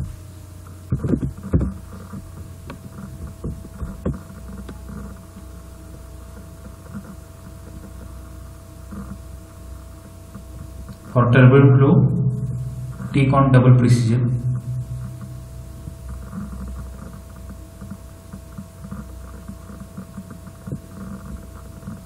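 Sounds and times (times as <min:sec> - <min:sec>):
low electrical hum: 0:00.0 - 0:22.0
thin steady tone: 0:04.1 - 0:22.0.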